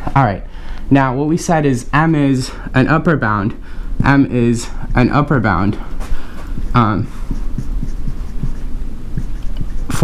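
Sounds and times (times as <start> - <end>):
steady low hum: 0.0 - 10.0
marker writing on whiteboard: 4.0 - 10.0.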